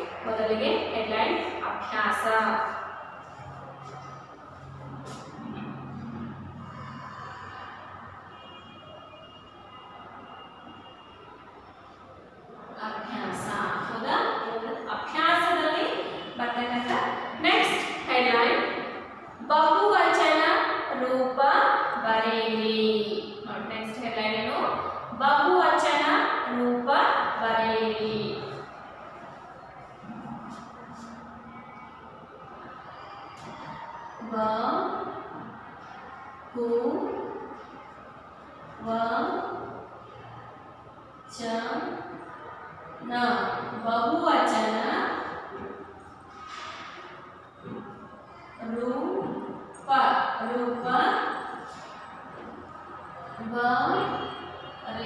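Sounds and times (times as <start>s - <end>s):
low room noise: 0.0s - 55.0s
marker pen on whiteboard: 0.4s - 7.5s.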